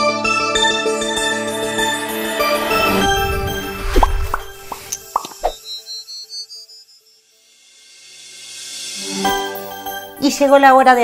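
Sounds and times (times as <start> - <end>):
theme music: 0.8 - 5.5
cartoon rising plops: 3.3 - 5.6.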